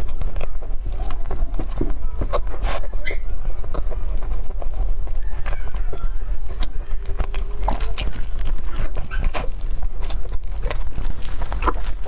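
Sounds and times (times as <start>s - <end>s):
steady low hum: 0.0s - 12.0s
wet chewing clicks and smacks: 0.0s - 12.0s.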